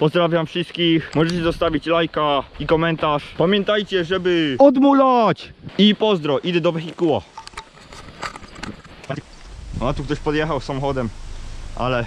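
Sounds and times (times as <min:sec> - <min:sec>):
scooter wheels rolling: 0:06.8 - 0:09.5.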